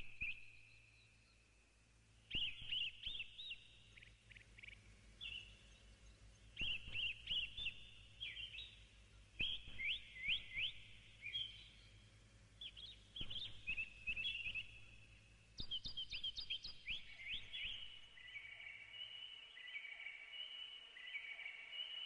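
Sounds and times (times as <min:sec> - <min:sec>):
small bird chirping: 0:00.0 - 0:01.6, 0:02.2 - 0:22.0
faint steady low hum: 0:00.0 - 0:22.0.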